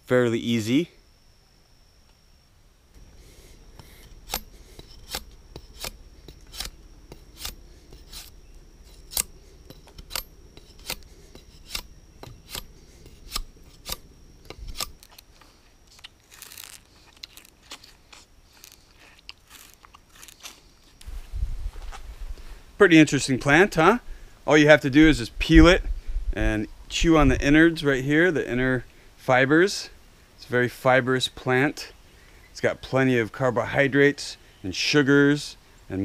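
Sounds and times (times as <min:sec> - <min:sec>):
blade scraping sugarcane rind: 0:03.3 - 0:21.0
scratchy rasp: 0:03.8 - 0:15.1.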